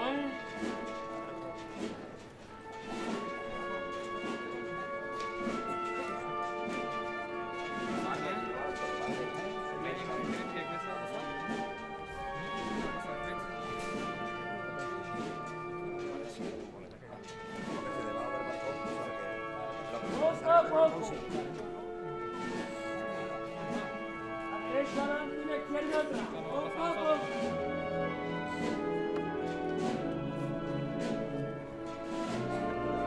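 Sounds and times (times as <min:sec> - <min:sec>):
wind band playing slow march: 0:00.0 - 0:33.0.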